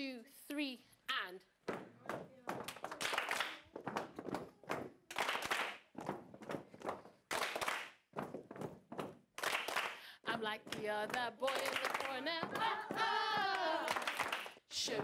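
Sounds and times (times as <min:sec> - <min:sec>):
people clapping in rhythm: 0:01.7 - 0:15.0.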